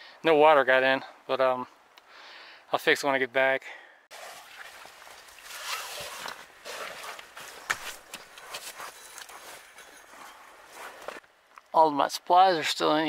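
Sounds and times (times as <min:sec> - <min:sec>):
clothing rustling against tarp: 0:04.1 - 0:11.2.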